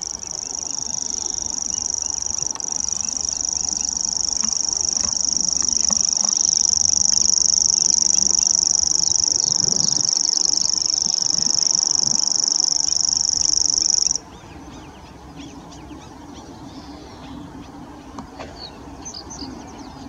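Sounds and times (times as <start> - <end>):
bird reeling trill: 0.0 - 14.2.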